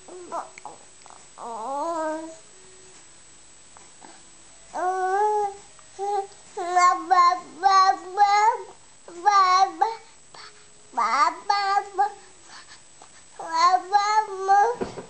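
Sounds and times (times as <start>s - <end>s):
baby babbling: 0.1s - 2.4s, 4.8s - 12.2s, 13.4s - 14.8s.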